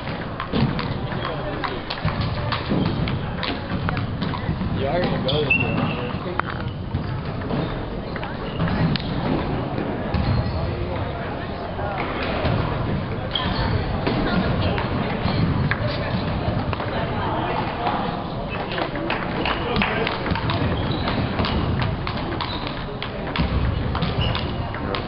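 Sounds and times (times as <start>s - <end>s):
ping-pong balls clicking: 0.0s - 5.3s, 18.7s - 25.0s
murmur of chatter: 0.0s - 25.0s.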